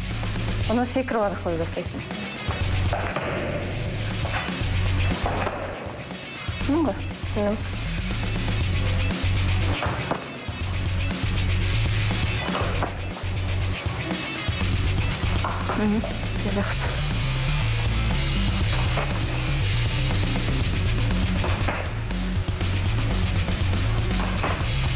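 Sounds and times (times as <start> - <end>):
background music with heavy beat: 0.0 - 24.9.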